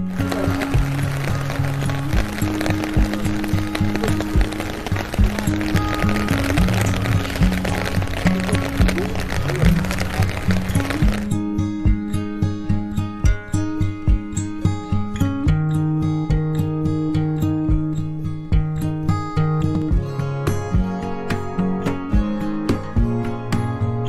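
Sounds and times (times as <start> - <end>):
rain falling: 0.0 - 11.4
background music: 0.0 - 24.0.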